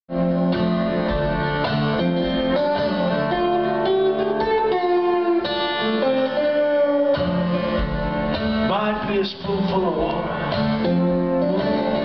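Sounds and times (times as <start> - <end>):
slide guitar blues riff: 0.1 - 12.0.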